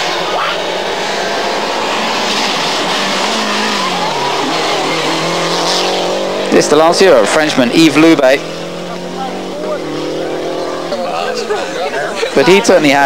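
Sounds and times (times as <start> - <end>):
rally car engine passing: 0.0 - 13.0.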